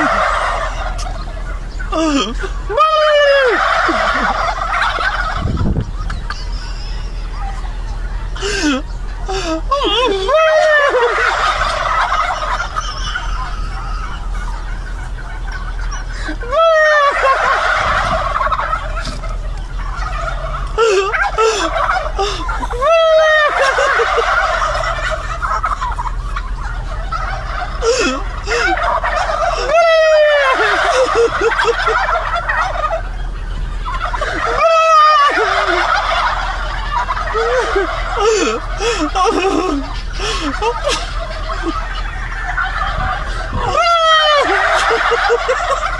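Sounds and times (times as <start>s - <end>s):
toy playing turkey gobble: 0.0s - 1.9s, 3.1s - 9.7s, 10.4s - 45.9s.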